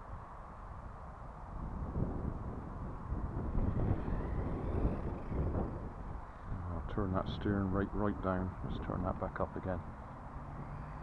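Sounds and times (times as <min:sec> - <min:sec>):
wind buffeting microphone: 0:00.0 - 0:11.0
distant toy car motor whine: 0:03.1 - 0:06.6, 0:09.8 - 0:11.0.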